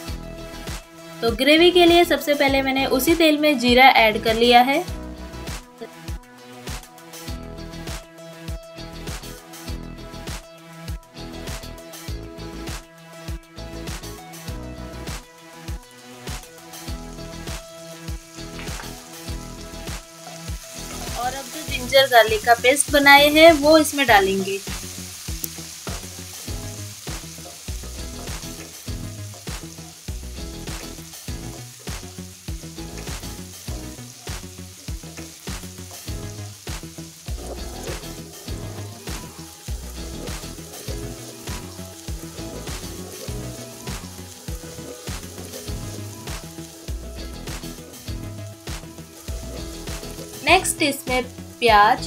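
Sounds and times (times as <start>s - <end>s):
paste sizzling in hot oil: 13.7s - 52.0s.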